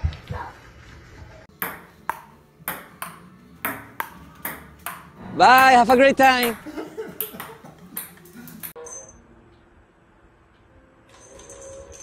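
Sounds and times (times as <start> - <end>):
table tennis ball hits: 1.5 - 8.8.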